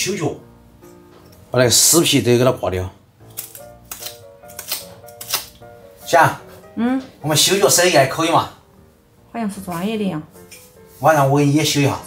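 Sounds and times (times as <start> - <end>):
light background music: 0.0 - 12.0
knife scraping skin: 3.3 - 5.6.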